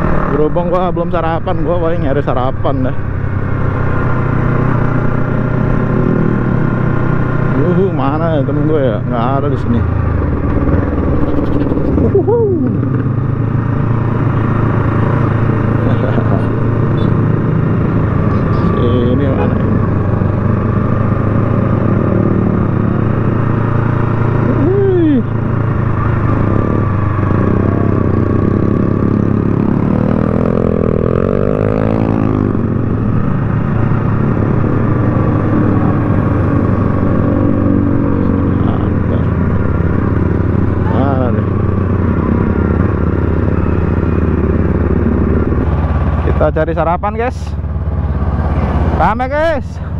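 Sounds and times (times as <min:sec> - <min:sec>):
motorcycle engine running: 0:00.0 - 0:49.9
motorcycles passing and revving: 0:00.0 - 0:49.9.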